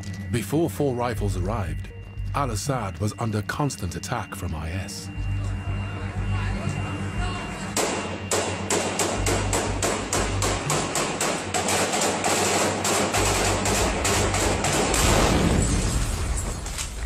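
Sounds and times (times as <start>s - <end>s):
rapid rifle gunfire: 7.8s - 15.5s
loud blast with deep rumble: 14.9s - 16.2s.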